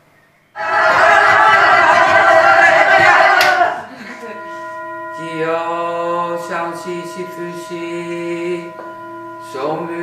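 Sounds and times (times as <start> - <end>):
group of people shouting: 0.6 - 3.9.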